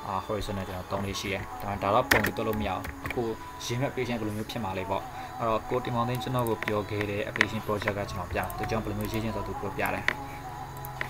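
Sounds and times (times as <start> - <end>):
person talking: 0.0 - 10.3.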